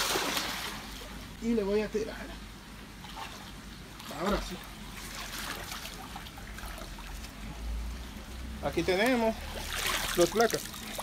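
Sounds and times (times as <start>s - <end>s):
water sloshing and trickling: 0.0s - 1.4s, 2.6s - 11.0s.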